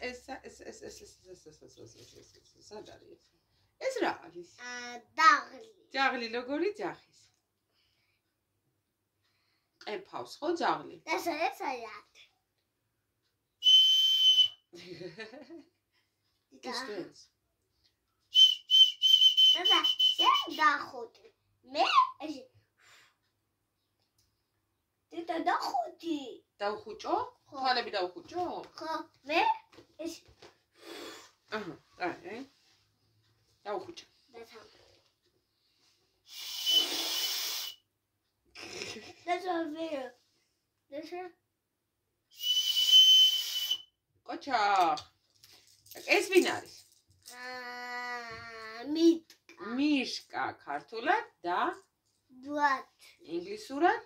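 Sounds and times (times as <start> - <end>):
toy whistle high note: 13.6 - 14.6, 18.3 - 20.6, 36.3 - 37.8, 42.4 - 43.9
breathy hiss blown from mouth: 36.2 - 37.8, 42.4 - 43.8.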